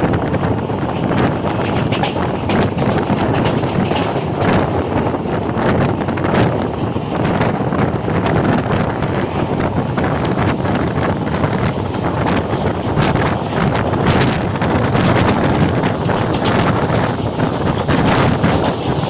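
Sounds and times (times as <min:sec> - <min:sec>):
train running noise: 0:00.0 - 0:19.0
wind buffeting microphone: 0:00.0 - 0:19.0.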